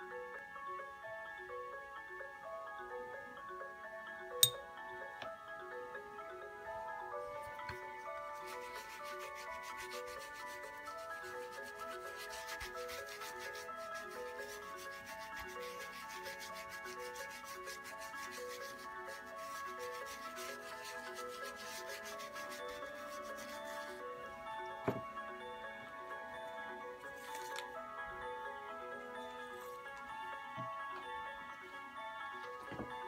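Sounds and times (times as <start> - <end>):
soft background music: 0.0 - 33.0
hand rubbing a wooden block: 8.3 - 24.0.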